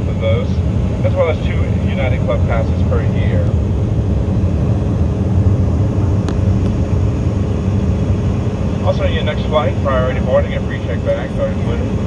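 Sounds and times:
airliner cabin engine drone: 0.0s - 12.0s.

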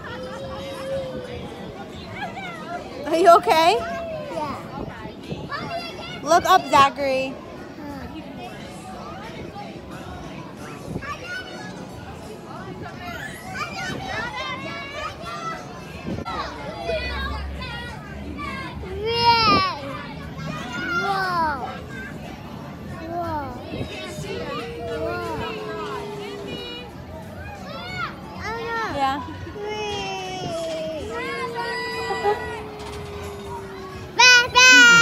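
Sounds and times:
background voices talking: 22.2s - 35.0s
child calling out: 30.5s - 35.0s.

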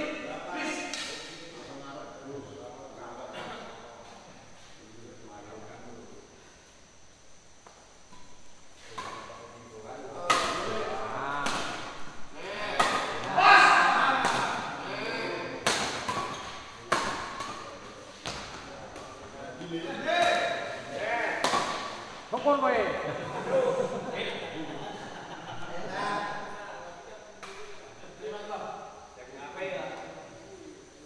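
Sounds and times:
rackets hitting shuttlecock: 10.2s - 14.8s, 15.6s - 19.2s, 20.1s - 22.5s
people shouting and calling: 10.5s - 15.5s.

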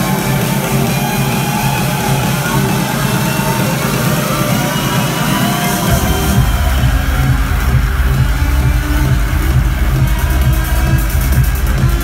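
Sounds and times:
bass and kick drum: 0.0s - 12.0s
electronic dance music: 0.0s - 12.0s.

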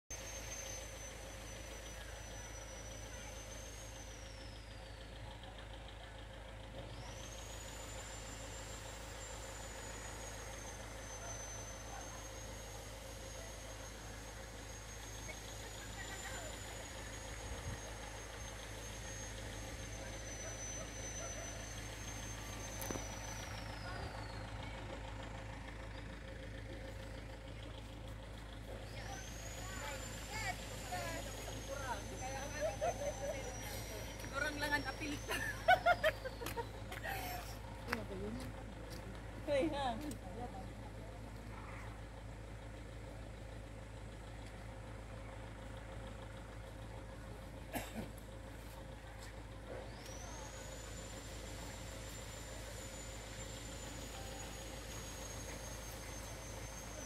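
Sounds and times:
low mechanical hum: 0.1s - 57.0s
high wavering whine: 7.0s - 26.1s, 28.7s - 36.4s, 49.9s - 57.0s.

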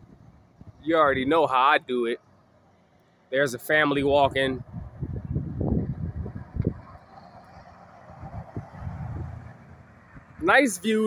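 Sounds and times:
wind buffeting microphone: 0.0s - 1.4s, 3.7s - 11.0s
distant street traffic: 0.0s - 11.0s.

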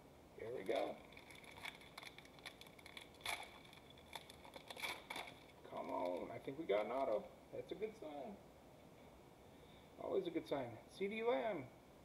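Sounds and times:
foil wrapper crinkling and tearing: 0.5s - 6.3s.

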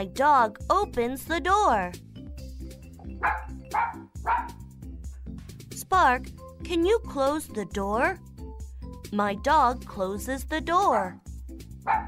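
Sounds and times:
light background music: 0.0s - 12.0s
cartoon dog barking: 3.2s - 4.6s, 10.8s - 11.2s.

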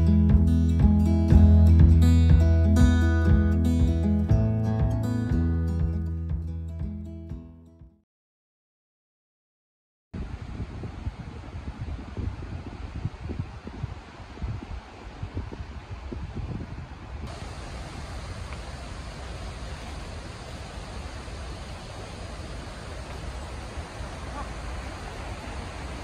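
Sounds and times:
wind buffeting microphone: 10.2s - 26.0s
steady rushing hiss: 17.3s - 26.0s.

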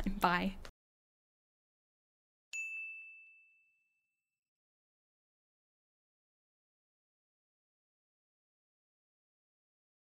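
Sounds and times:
bell ding: 2.5s - 4.4s.

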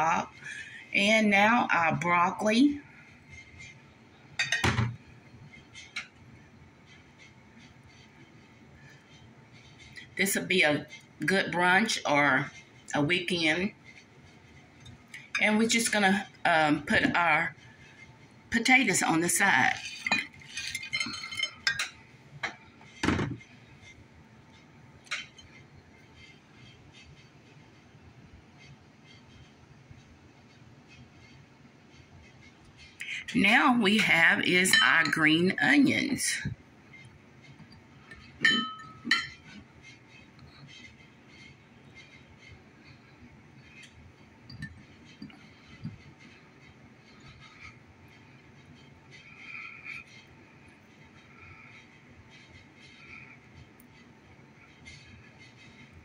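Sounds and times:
utensil clinking on plate: 19.7s - 23.2s, 37.7s - 39.6s.

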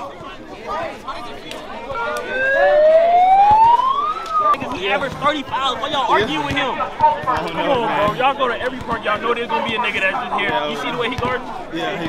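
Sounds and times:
crowd chatter: 0.0s - 12.0s
siren wail: 1.9s - 4.7s.

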